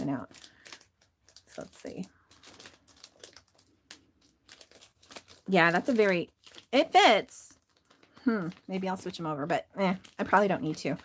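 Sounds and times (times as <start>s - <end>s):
plastic crinkling and rustling: 0.0s - 11.0s.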